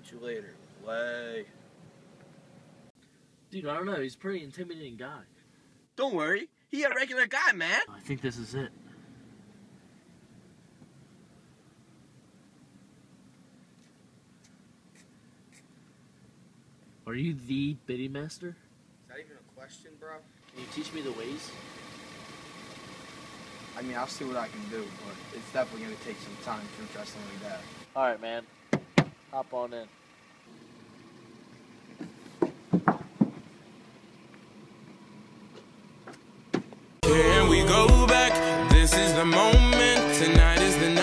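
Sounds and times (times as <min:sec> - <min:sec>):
short knocks and thumps: 0:28.7 - 0:29.2, 0:32.0 - 0:33.5.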